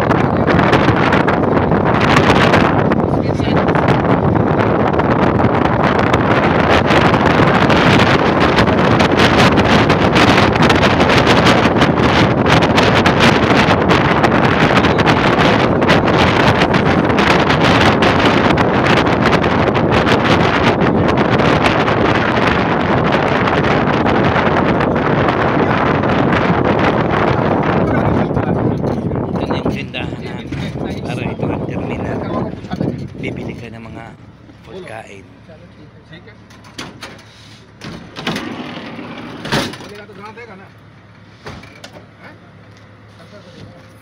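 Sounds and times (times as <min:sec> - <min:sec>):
wind buffeting microphone: 0:00.0 - 0:35.4, 0:37.7 - 0:41.2
vehicle road noise: 0:00.0 - 0:44.0.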